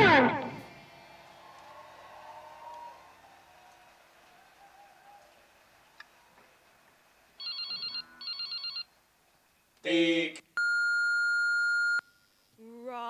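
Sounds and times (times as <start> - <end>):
telephone ringing: 7.4 - 8.9, 10.6 - 12.2
voice: 9.9 - 10.4, 12.6 - 13.0
answering machine beep: 10.6 - 12.1.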